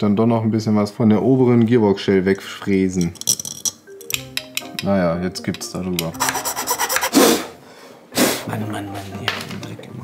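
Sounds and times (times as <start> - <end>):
hand tool rasping on metal: 6.1 - 7.3.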